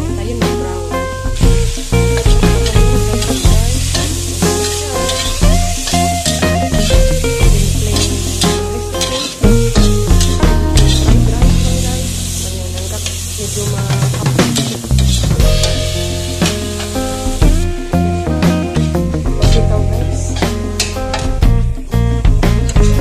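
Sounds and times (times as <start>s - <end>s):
music with strong bass line: 0.0s - 12.4s, 13.8s - 23.0s
oil sizzling in a wok: 0.0s - 23.0s
metal spatula scraping wok: 1.8s - 17.5s.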